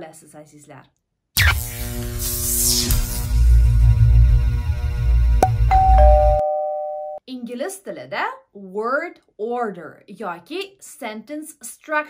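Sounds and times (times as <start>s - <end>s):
heavy bass: 3.2s - 6.4s
two-note falling chime: 5.4s - 7.2s.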